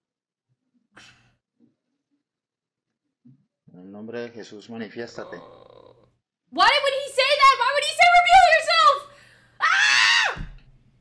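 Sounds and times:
woman screaming: 9.6 - 10.5.

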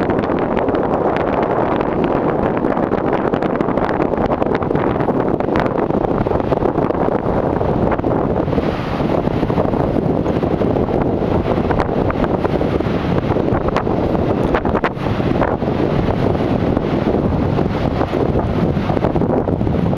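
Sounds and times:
wind buffeting microphone: 0.0 - 19.9.

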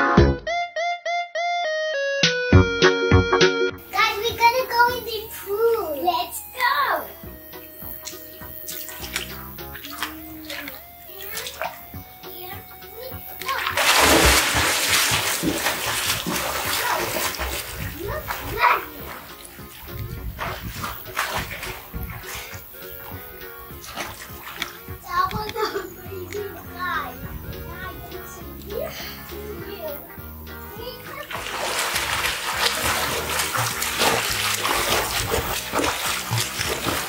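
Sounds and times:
background music: 0.0 - 37.0
child's voice: 3.8 - 7.3, 9.9 - 13.8, 16.6 - 19.3, 25.0 - 31.5
running water rushing: 3.8 - 29.9, 30.7 - 37.0.

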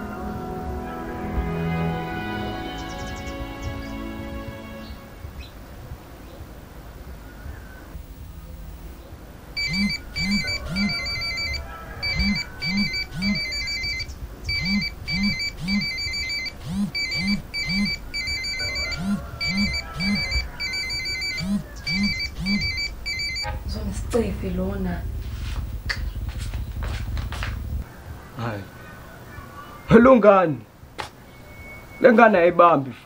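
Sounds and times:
phone electronic ringtone: 9.6 - 23.6.

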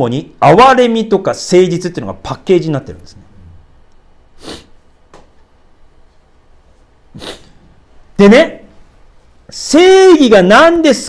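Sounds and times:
quiet room noise: 0.0 - 11.0
man's sharp intake of breath: 4.4 - 4.8, 7.1 - 7.8.

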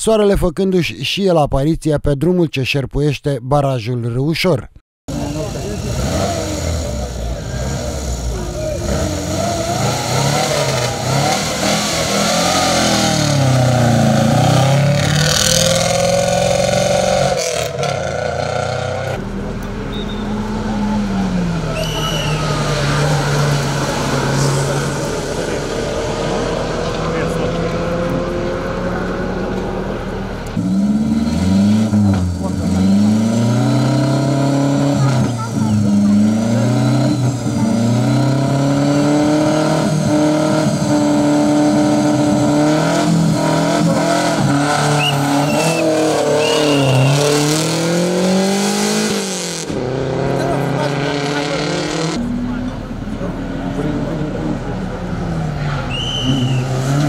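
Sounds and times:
engine revving hard: 5.1 - 19.2, 20.2 - 52.6
race car accelerating: 5.1 - 57.0.

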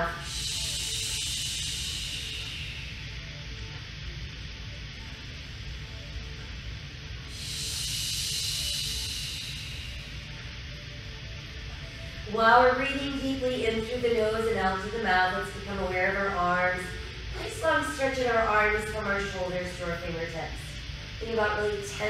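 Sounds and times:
soft background music: 0.0 - 22.0
woman breathing deeply: 0.1 - 3.4, 7.2 - 10.6.

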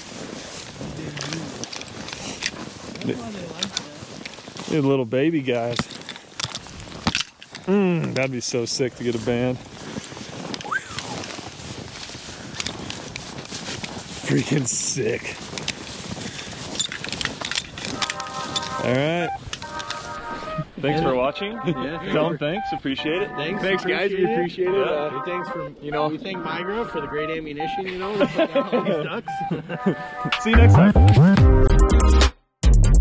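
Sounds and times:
footsteps crunching on snow: 0.0 - 29.0
soft music: 18.0 - 32.3.

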